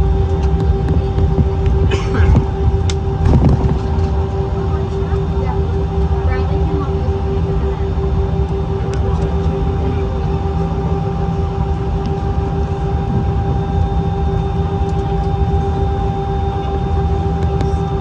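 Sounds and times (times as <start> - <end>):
aircraft engines rumbling: 0.0 - 18.0
constant hum-like tone: 0.0 - 18.0.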